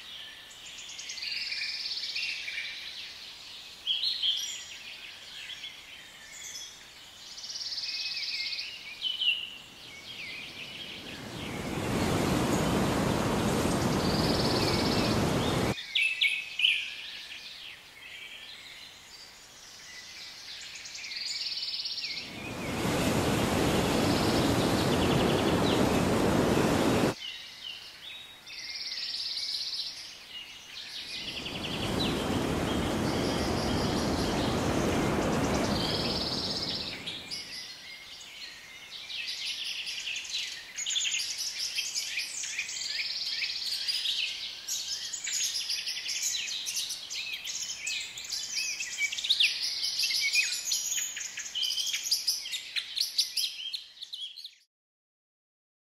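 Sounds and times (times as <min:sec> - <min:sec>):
birds chirping and singing: 0:22.2 - 0:27.2, 0:31.0 - 0:37.6
rushing noise: 0:22.2 - 0:27.2, 0:31.1 - 0:37.4.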